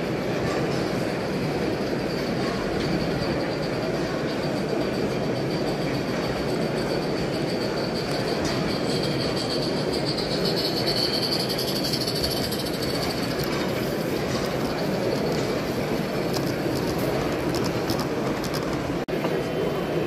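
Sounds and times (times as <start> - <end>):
hubbub of hall noise: 0.0 - 20.0
model steam train running past: 0.0 - 20.0.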